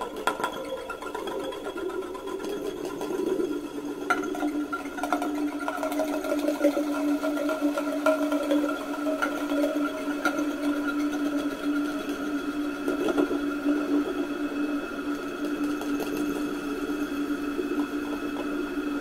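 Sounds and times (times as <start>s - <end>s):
sustained drone tones: 0.0s - 19.0s.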